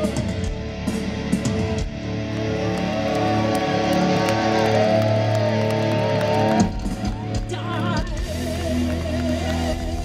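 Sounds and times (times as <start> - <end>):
electric guitar long wavering notes: 0.0 - 10.0
heavy metal band playing: 0.0 - 10.0.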